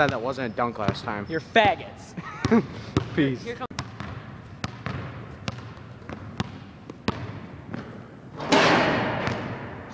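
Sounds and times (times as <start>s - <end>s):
basketball bouncing on hardwood: 2.4s - 7.9s.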